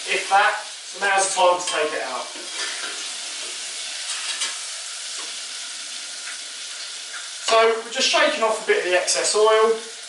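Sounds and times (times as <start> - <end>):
squid deep-frying in oil: 0.0 - 10.0.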